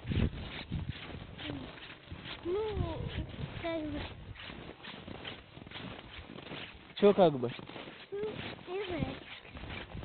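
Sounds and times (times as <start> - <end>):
footsteps crunching on snow: 0.0 - 10.0.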